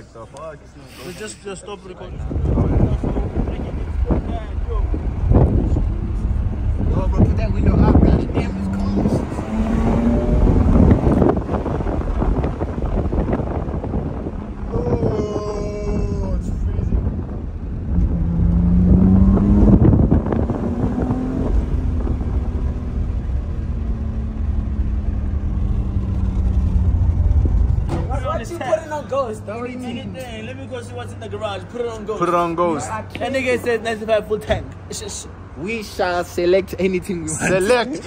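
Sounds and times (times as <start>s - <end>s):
car engine accelerating: 2.0s - 31.6s.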